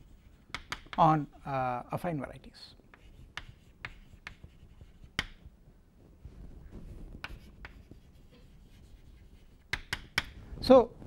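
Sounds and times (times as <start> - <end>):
chalk tapping on chalkboard: 0.1 - 1.1, 2.9 - 5.5, 7.2 - 10.4.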